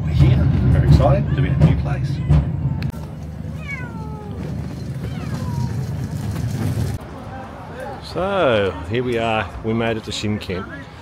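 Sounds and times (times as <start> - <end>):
cat meowing: 3.5 - 5.9.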